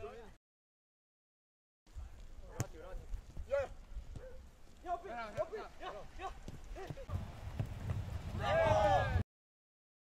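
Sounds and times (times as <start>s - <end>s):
players shouting calls: 8.3s - 9.2s.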